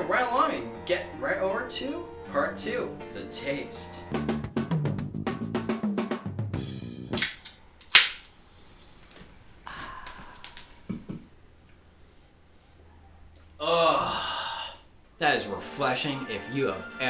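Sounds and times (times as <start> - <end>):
snare drum fill: 4.2 - 7.3
can tab snapping open: 7.2 - 8.2.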